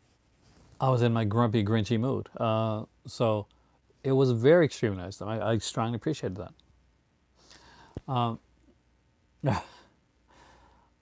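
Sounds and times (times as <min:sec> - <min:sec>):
man speaking: 0:04.1 - 0:06.5, 0:08.1 - 0:08.4
man sighing: 0:09.4 - 0:10.8.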